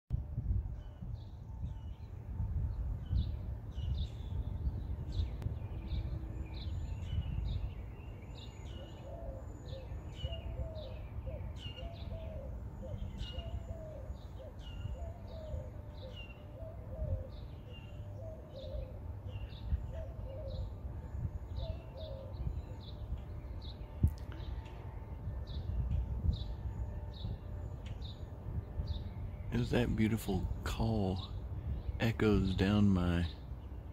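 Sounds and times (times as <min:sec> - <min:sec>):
steady low rumble: 0:00.1 - 0:08.8, 0:16.6 - 0:33.9
small birds chirping: 0:03.0 - 0:24.8, 0:25.5 - 0:33.9
dove cooing: 0:08.7 - 0:20.8.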